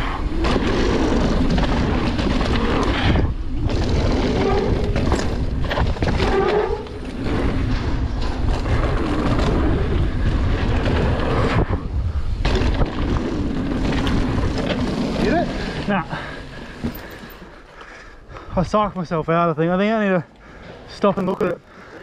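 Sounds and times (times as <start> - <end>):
wind on microphone: 0.0 - 15.4
bike rattling over bumps: 0.0 - 18.4
bike tyres on dirt: 0.0 - 22.0.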